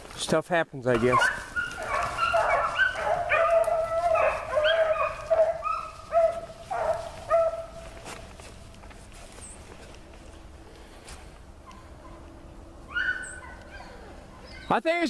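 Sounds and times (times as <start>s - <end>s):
hounds baying: 0.9s - 8.2s, 11.6s - 14.7s.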